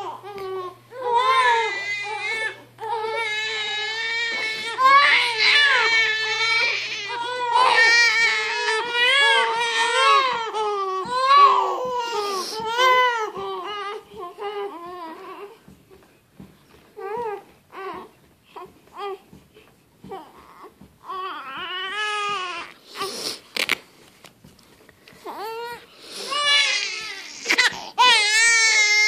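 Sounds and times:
infants crying: 0:00.0 - 0:15.6, 0:25.3 - 0:29.0.

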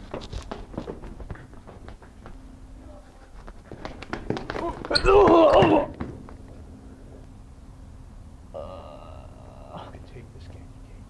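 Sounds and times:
running footsteps on hard floor: 0:00.0 - 0:02.4, 0:03.4 - 0:06.4.

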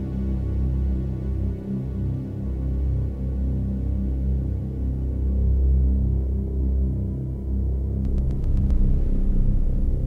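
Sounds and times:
dark low synthesizer drone: 0:03.2 - 0:10.0.

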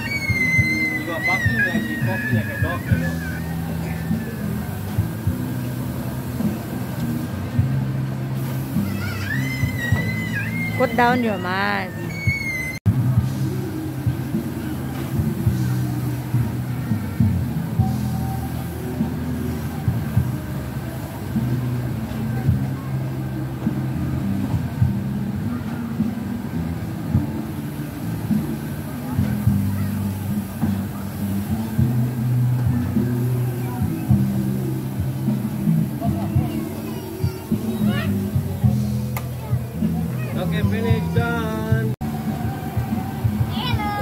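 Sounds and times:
carousel music: 0:00.0 - 0:44.0.

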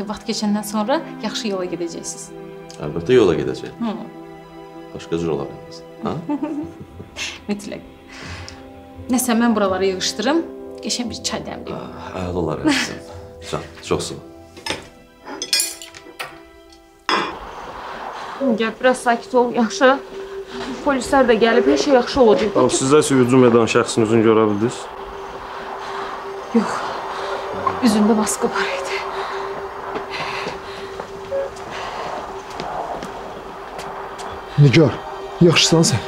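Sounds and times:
faint ambient hiss: 0:00.0 - 0:36.0
soft background music: 0:00.0 - 0:36.0
tableware clinking: 0:14.6 - 0:16.8
low held tone: 0:17.1 - 0:36.0.

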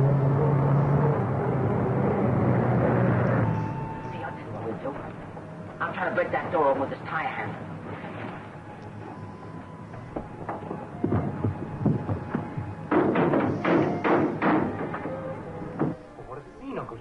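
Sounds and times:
tire iron banging on metal door: 0:12.9 - 0:15.1.

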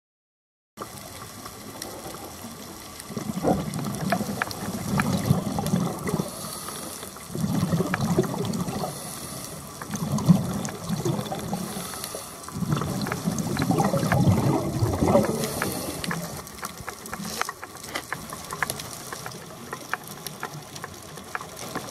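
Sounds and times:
faint clicks: 0:00.8 - 0:21.9
regulator bubbles underwater: 0:00.8 - 0:21.9.

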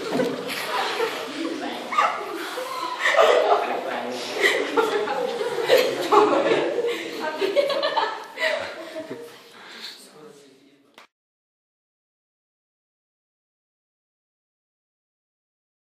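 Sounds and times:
girls talking indistinctly: 0:00.0 - 0:09.4
girls chuckling: 0:00.0 - 0:09.5.

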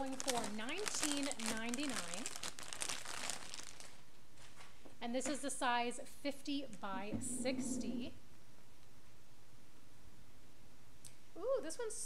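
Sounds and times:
plastic bag crinkling: 0:00.0 - 0:04.8.

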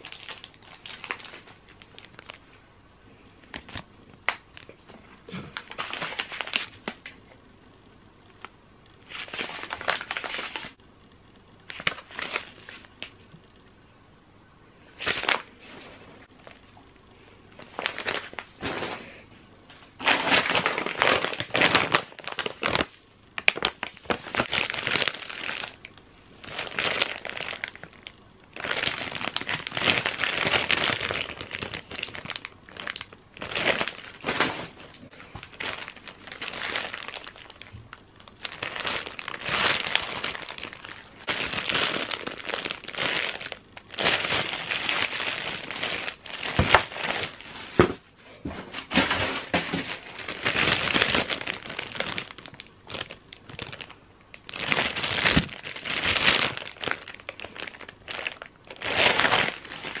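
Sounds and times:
plastic bags crinkling: 0:00.0 - 0:02.6, 0:03.4 - 0:07.2, 0:08.4 - 0:10.8, 0:11.6 - 0:13.1, 0:15.0 - 0:16.6, 0:17.5 - 0:19.2, 0:19.9 - 0:48.0, 0:48.7 - 1:00.0.

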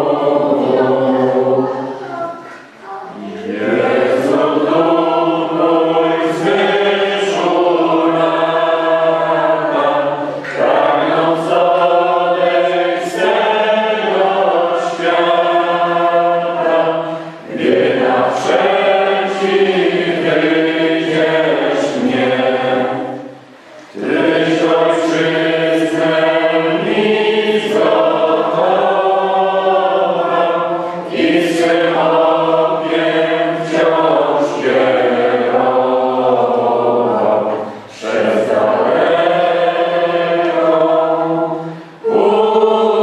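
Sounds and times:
choir singing held notes: 0:00.0 - 0:43.0.

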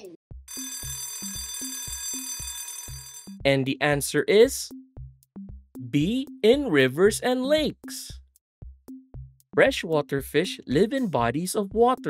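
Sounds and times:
alarm clock bell ringing: 0:00.5 - 0:03.4
background music with bass line: 0:03.4 - 0:12.0.

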